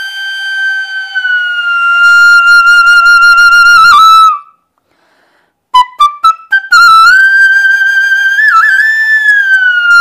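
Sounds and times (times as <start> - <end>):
bamboo flute long note: 0.0 - 4.5, 5.8 - 10.0.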